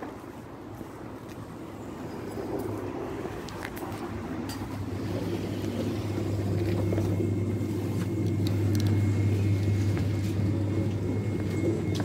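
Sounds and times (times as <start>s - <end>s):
low hum of refrigerators: 0.0s - 12.0s
faint high whine: 1.7s - 12.0s.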